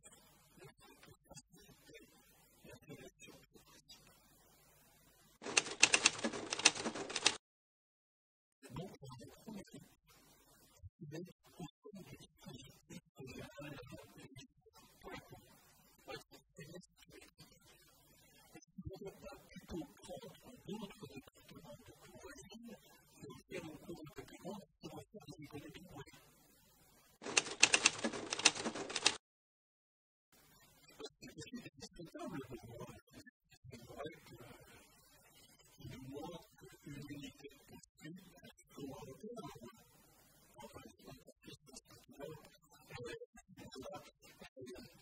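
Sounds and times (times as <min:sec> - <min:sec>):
typewriter key clacks: 0:05.4 - 0:07.4, 0:27.2 - 0:29.2.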